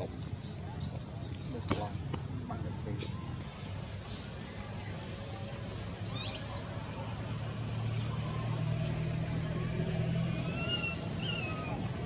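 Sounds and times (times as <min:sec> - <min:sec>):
vehicle engine running: 0:06.6 - 0:12.0.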